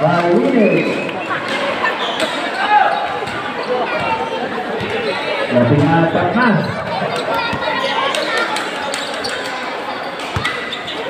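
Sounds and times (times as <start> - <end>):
spectator chatter: 0.0 - 11.0.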